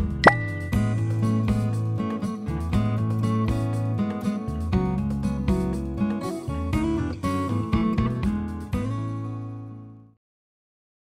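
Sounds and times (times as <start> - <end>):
strummed acoustic guitar music: 0.0 - 9.8
rising pop sound effect: 0.2 - 1.1
thin high ringing tone: 0.3 - 1.0.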